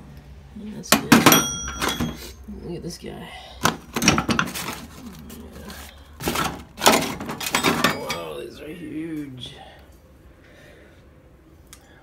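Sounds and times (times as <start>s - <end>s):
metal hand tools clanking: 0.9s - 2.4s, 3.6s - 4.8s, 6.2s - 8.4s.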